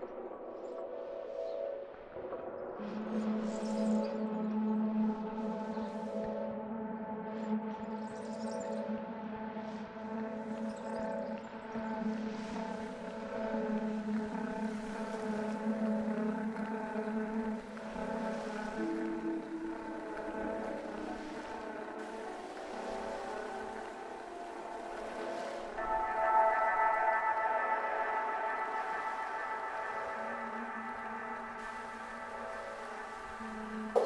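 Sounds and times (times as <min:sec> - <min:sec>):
ambient drone music: 0:00.0 - 0:34.0.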